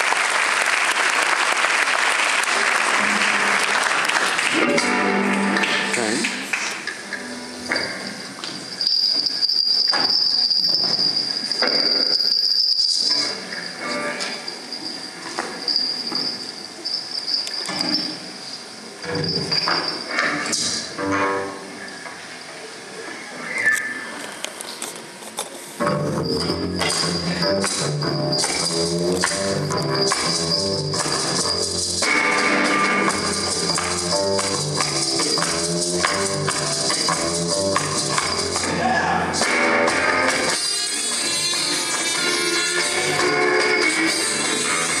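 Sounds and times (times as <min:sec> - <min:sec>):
audience voices: 0:00.0 - 0:08.3
stage noises: 0:00.0 - 0:45.0
live band music: 0:04.4 - 0:06.5, 0:25.8 - 0:45.0
steady high whistling tone: 0:07.5 - 0:20.2.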